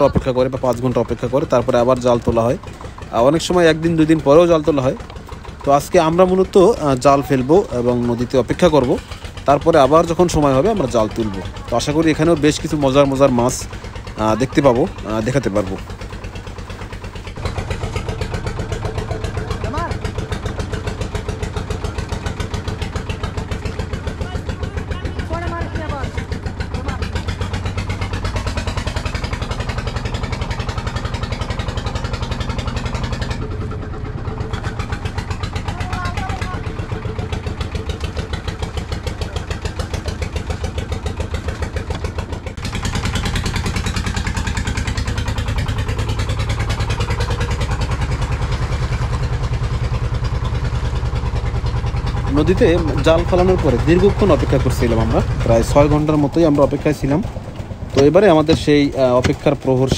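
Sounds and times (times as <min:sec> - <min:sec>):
boat engine chugging: 0:00.0 - 0:59.9.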